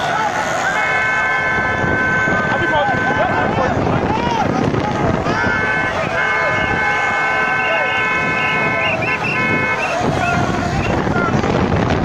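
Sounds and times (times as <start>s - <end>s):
long high horn tones: 0.0s - 3.8s, 5.2s - 11.3s
crowd shouting: 0.0s - 12.0s.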